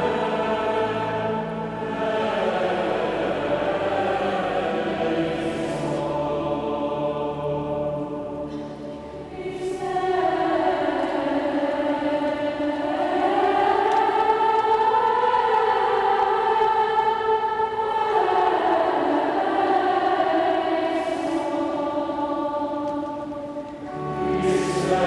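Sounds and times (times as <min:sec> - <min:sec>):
youth choir singing: 0:00.0 - 0:25.0.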